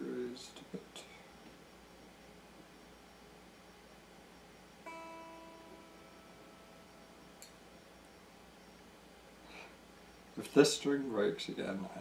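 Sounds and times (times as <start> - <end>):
electric guitar string plucked: 4.9 - 7.6.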